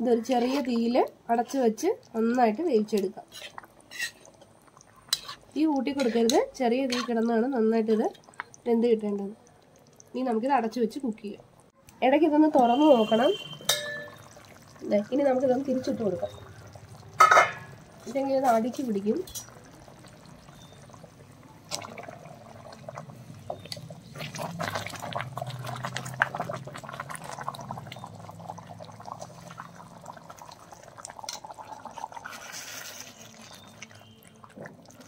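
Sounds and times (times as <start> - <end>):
thick curry bubbling: 0.0 - 35.0
metal spoons scraping pan: 3.2 - 4.3, 5.1 - 7.3, 17.2 - 17.8.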